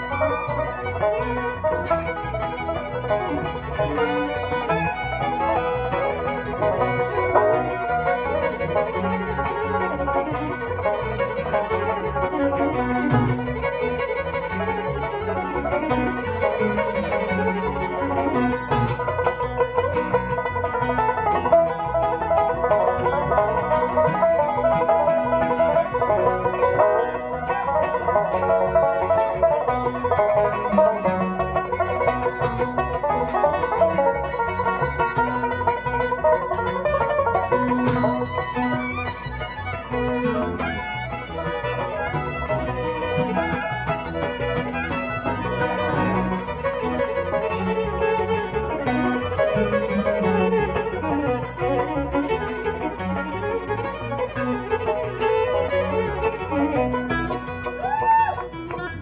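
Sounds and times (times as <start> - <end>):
banjo: 0.0 - 59.0
bluegrass band playing: 0.0 - 59.0
fiddle: 0.0 - 59.0.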